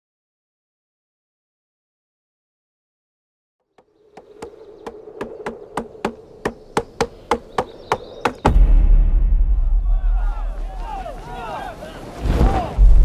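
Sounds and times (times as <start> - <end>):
sharp knocks: 3.8 - 8.7
loud deep rumble: 8.5 - 11.0.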